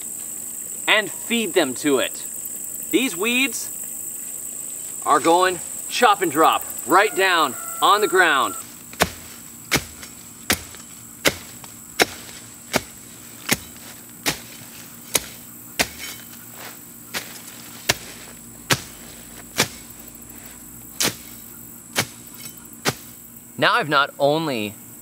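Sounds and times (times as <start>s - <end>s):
machete chopping weed stems: 8.8s - 23.2s.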